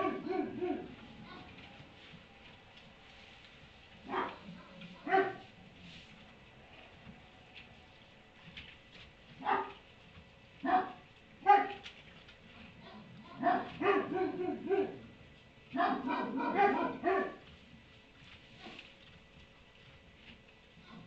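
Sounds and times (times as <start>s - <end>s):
dog barking: 0.0s - 1.5s, 4.0s - 5.5s, 9.4s - 9.8s, 10.6s - 11.8s, 12.8s - 15.1s, 15.7s - 17.4s.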